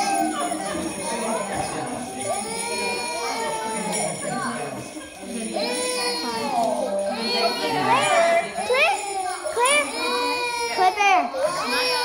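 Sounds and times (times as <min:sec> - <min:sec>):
toddler crying: 0:05.5 - 0:12.0.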